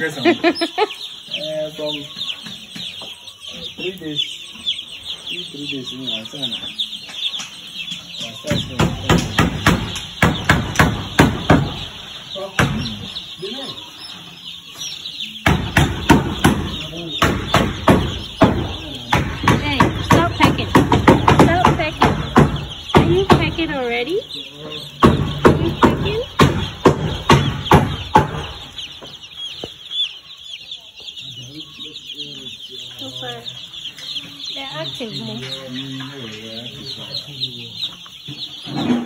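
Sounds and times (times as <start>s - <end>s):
chicks peeping: 0.0s - 39.0s
loud sharp knocks: 7.0s - 13.2s, 15.4s - 24.2s, 24.9s - 29.7s.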